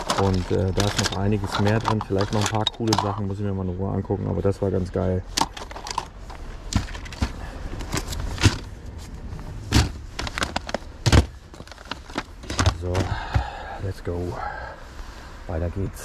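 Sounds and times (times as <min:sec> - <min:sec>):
plastic basket being moved: 0:00.0 - 0:03.2, 0:05.4 - 0:13.6
plastic cases clacking: 0:00.0 - 0:03.4, 0:05.2 - 0:13.7.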